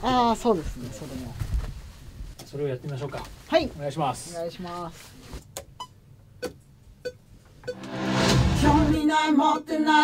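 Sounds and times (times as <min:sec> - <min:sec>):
backing music: 0:07.7 - 0:09.6.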